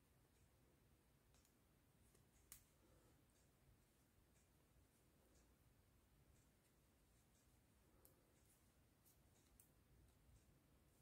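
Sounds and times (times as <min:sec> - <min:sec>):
metal knitting needles clicking: 0:01.2 - 0:03.5, 0:06.3 - 0:11.0.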